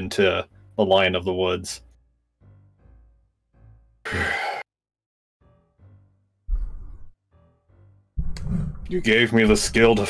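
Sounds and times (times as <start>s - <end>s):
person sighing into a microphone: 4.1s - 4.6s.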